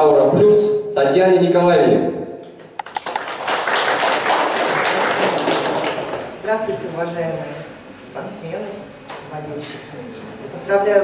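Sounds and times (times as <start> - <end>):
audience applauding: 2.8 - 6.4.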